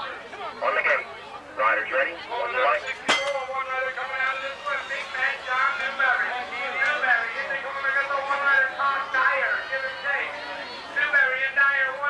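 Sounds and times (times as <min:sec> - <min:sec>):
announcer over loudspeakers: 0:01.7 - 0:12.0.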